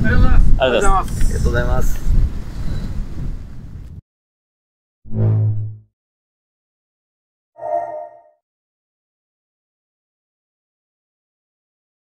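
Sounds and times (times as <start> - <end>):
wind buffeting microphone: 0.0 - 4.0.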